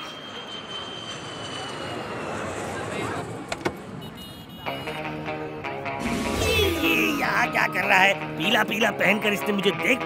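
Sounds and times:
faint high jet whine: 0.0s - 4.4s
traffic noise: 0.0s - 10.0s
music: 4.6s - 10.0s.

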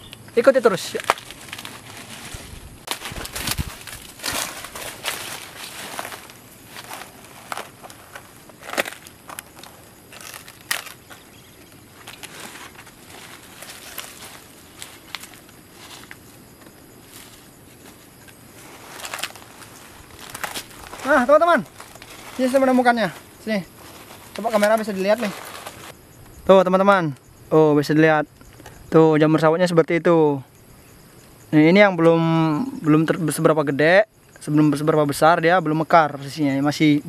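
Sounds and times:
dry palm fronds breaking: 0.5s - 16.3s, 17.1s - 23.2s, 23.9s - 25.9s.

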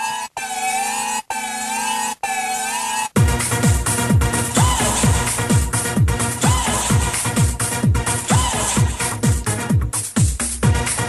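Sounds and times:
warbling siren effect: 0.0s - 3.2s.

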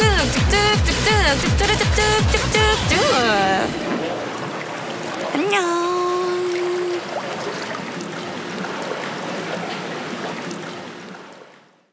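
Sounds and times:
water rushing along channel: 0.0s - 11.9s.

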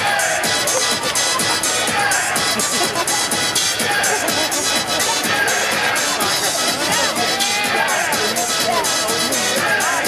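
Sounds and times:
crowd chatter: 0.0s - 10.0s
music over loudspeakers: 0.0s - 10.0s.

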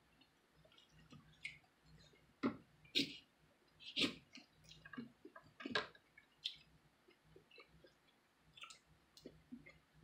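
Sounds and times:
wet chewing of juicy fruit: 0.2s - 2.3s, 3.8s - 9.9s.

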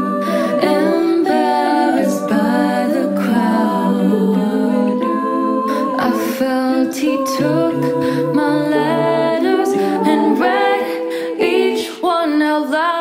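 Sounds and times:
women singing in close harmony: 0.0s - 13.0s.

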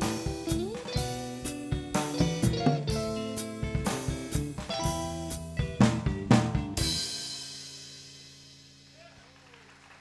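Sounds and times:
rock band playing: 0.0s - 9.0s.

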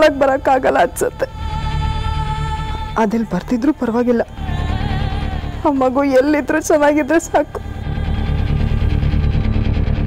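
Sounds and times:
low rumbling drone: 0.0s - 10.0s
steady pulse: 0.0s - 10.0s.

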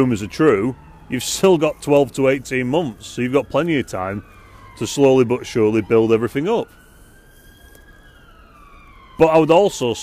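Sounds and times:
distant siren wailing: 0.0s - 10.0s.

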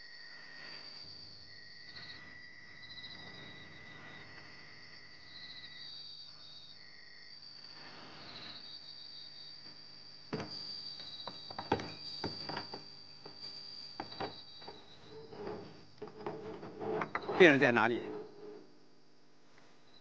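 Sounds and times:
crickets chirping: 0.0s - 20.0s.

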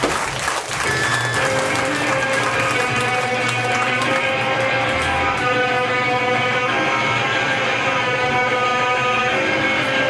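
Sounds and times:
crowd clapping: 0.0s - 5.7s.

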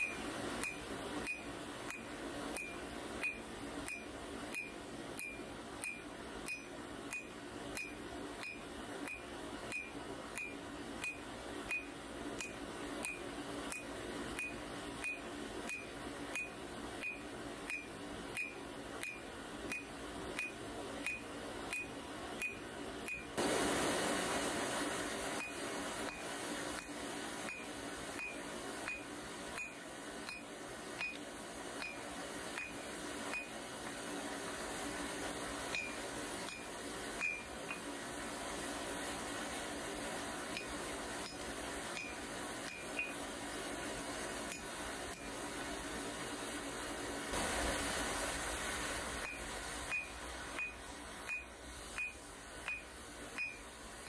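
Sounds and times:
hammer striking hot steel on anvil: 0.0s - 23.5s, 25.4s - 31.2s, 32.6s - 33.5s, 35.7s - 37.8s, 42.0s - 43.2s, 49.2s - 52.8s
steady rushing noise: 23.4s - 28.8s, 31.1s - 52.8s.

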